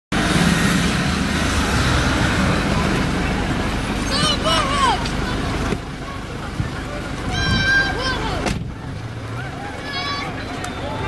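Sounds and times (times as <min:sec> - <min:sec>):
steady rumbling noise: 0:00.1 - 0:11.0
people shouting: 0:04.0 - 0:05.0, 0:07.2 - 0:08.4, 0:09.3 - 0:11.0.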